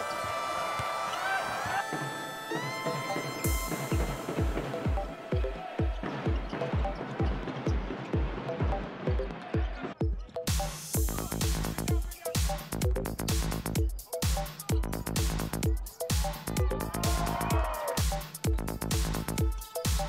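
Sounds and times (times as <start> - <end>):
kick drum beat: 3.3 - 20.0.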